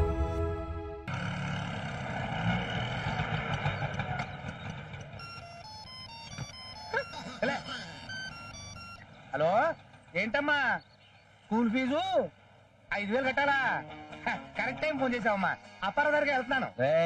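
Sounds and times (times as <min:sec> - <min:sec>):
street traffic: 0:00.0 - 0:11.5
phone ringtone beeping melody: 0:05.4 - 0:09.0.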